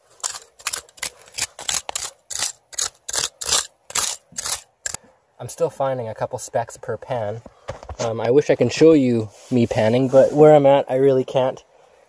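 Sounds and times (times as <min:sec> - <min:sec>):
hand tool scraping dirt and gravel: 0:00.0 - 0:05.0.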